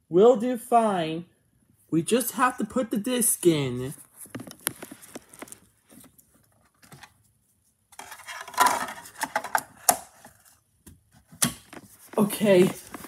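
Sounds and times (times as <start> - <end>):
dvd clicking and clattering: 8.0 - 10.4.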